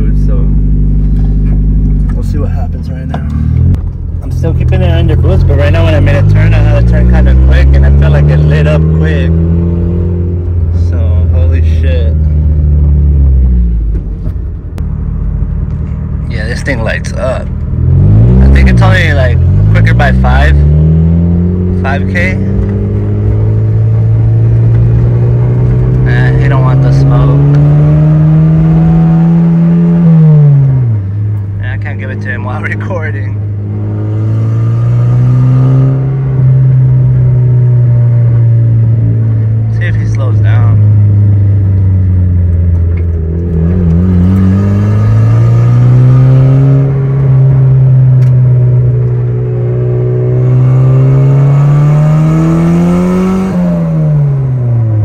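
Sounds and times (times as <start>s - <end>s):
car engine revving through gears: 0.0s - 14.4s, 16.4s - 55.0s.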